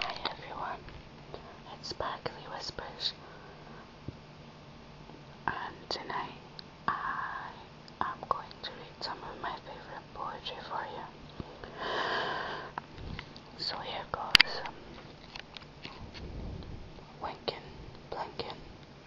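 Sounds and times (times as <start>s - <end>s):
person whispering: 0.0s - 0.8s, 1.4s - 3.2s, 5.5s - 11.2s, 13.6s - 14.8s, 17.2s - 18.6s.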